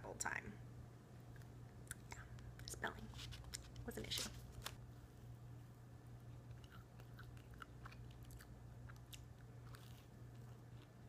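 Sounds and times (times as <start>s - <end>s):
low steady hum: 0.0s - 11.0s
person chewing crunchy toast: 6.3s - 11.0s.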